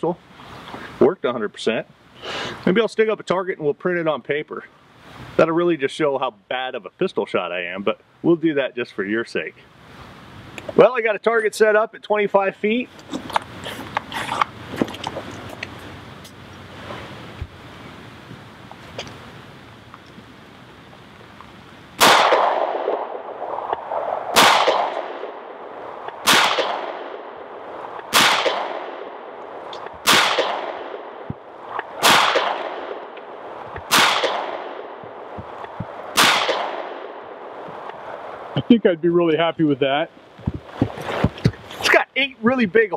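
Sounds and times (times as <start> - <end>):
handling clicks and rustle: 12.9 - 17.5
pistol shots echoing: 22.0 - 23.3, 24.3 - 25.6, 26.2 - 27.5, 28.1 - 29.4, 30.0 - 31.3, 31.9 - 33.2, 33.9 - 35.3, 36.1 - 37.5.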